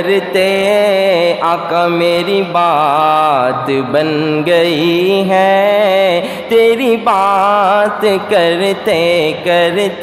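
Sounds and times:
man singing unaccompanied: 0.0 - 10.0.

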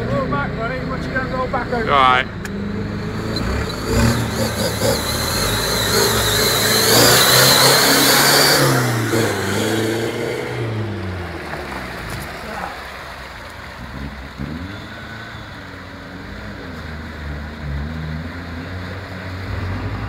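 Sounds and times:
car engine revving: 0.0 - 20.0
water rushing and splashing: 7.2 - 20.0.

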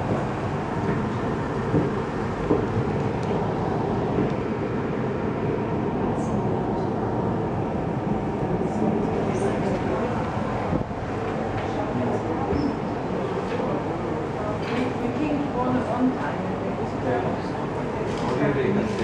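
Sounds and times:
steady background noise: 0.0 - 19.0.

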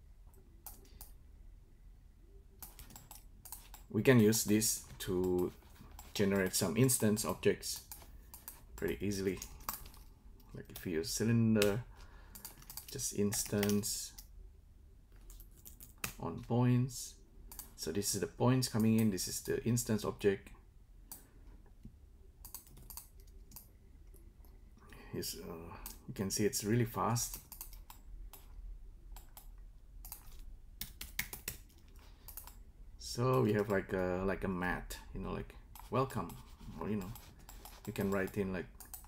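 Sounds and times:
typing on computer keyboard: 2.6 - 3.8, 12.3 - 13.8, 22.4 - 23.7, 27.3 - 28.4, 30.1 - 32.6.

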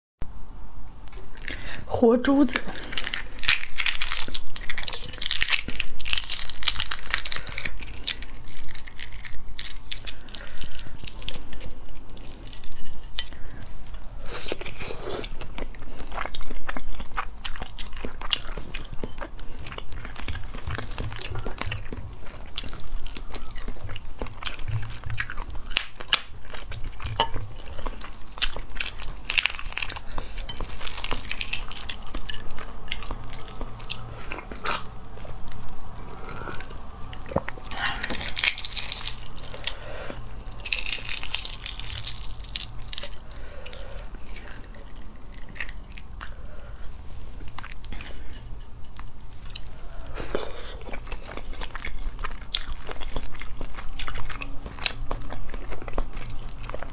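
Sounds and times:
close biting and chewing: 2.5 - 56.9.

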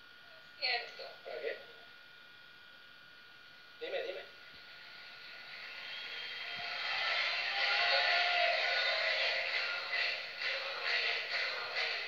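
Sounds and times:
television audio with music: 3.8 - 12.0.

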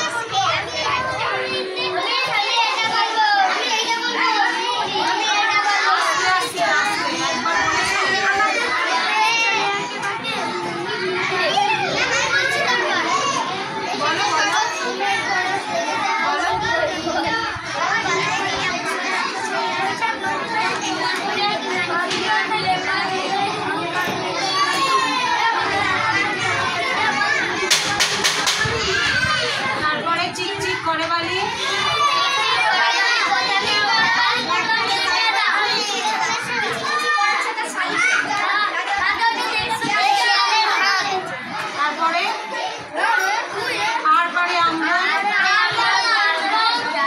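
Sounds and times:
children talking: 0.0 - 47.0.

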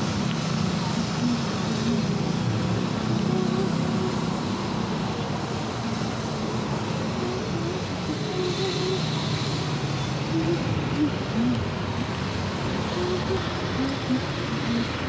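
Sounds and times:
road traffic noise: 0.0 - 15.0.

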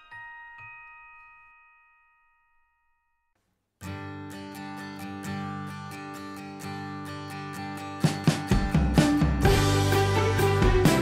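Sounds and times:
bell-like chime note: 0.0 - 3.3.

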